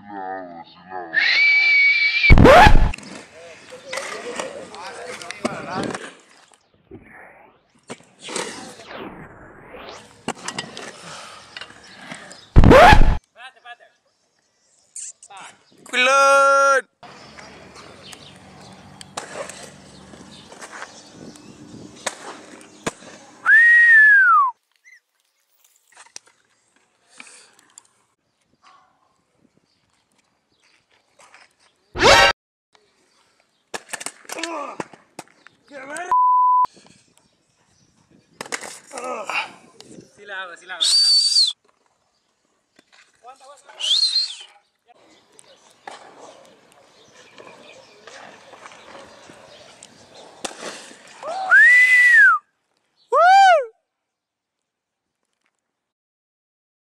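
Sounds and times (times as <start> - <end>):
inline skate wheels rolling on concrete: 2.5 - 8.9, 9.5 - 12.9, 17.0 - 23.5, 36.8 - 40.0, 44.9 - 52.0
high-pitched whistle: 40.8 - 41.6.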